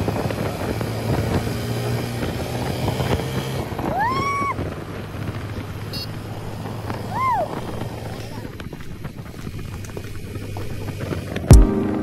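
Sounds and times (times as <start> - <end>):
wind on microphone: 0.0 - 11.5
motorcycle engine running: 0.0 - 12.0.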